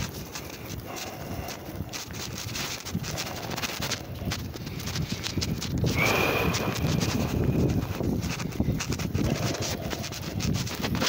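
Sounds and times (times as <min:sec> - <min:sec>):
fabric rubbing on microphone: 0:00.0 - 0:11.0.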